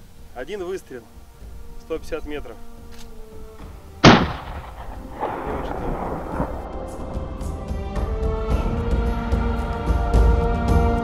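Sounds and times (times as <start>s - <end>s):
rifle shot: 4.0s - 7.0s.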